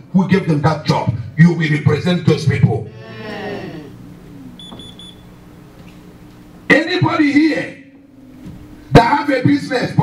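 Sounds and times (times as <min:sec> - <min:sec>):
faint steady hum: 0:00.0 - 0:10.0
high-pitched electronic beeps: 0:04.6 - 0:05.4.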